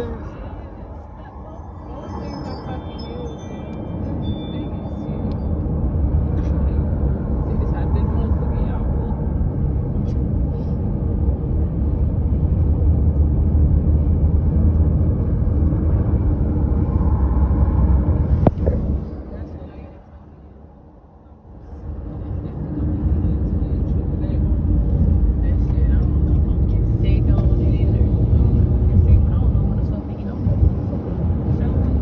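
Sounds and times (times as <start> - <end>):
car road and wind noise: 0.0 - 32.0.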